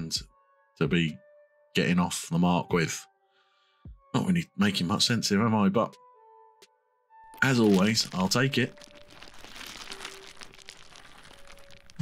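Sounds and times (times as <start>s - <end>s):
dense crackling rustling noise: 7.3s - 12.0s.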